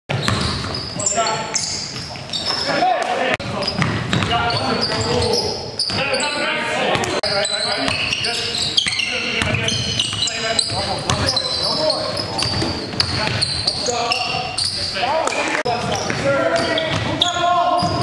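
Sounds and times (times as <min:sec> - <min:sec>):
basketball bouncing on hardwood floor: 0:00.1 - 0:00.9, 0:03.4 - 0:05.0, 0:09.4 - 0:11.4.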